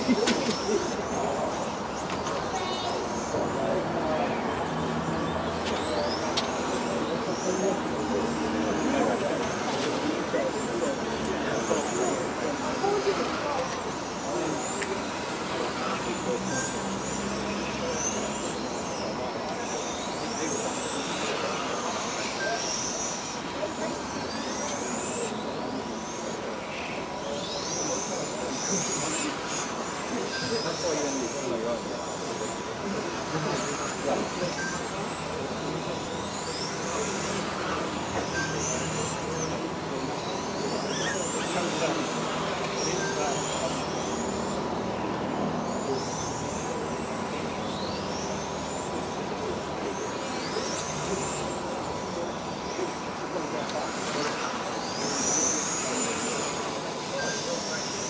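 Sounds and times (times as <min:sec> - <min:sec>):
electric model cars whining: 0:00.0 - 0:58.0
faint murmur of voices: 0:00.0 - 0:58.0.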